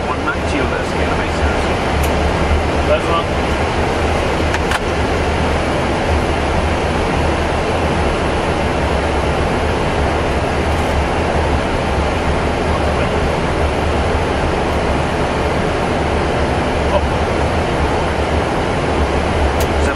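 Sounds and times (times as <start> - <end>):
airflow rush in cockpit: 0.0 - 19.9
strong low hum: 0.0 - 19.9.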